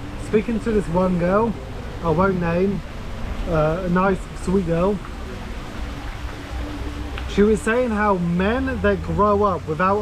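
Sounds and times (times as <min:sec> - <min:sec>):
background hiss: 0:00.0 - 0:10.0
low outdoor rumble: 0:00.0 - 0:10.0.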